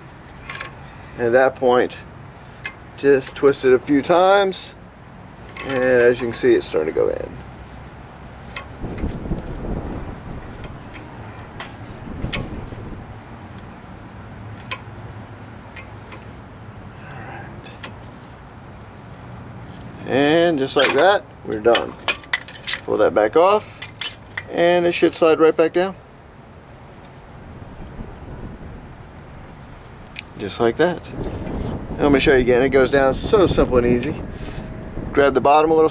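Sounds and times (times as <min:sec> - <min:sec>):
wind rumbling on microphone: 0:08.7 - 0:13.3, 0:27.4 - 0:35.9.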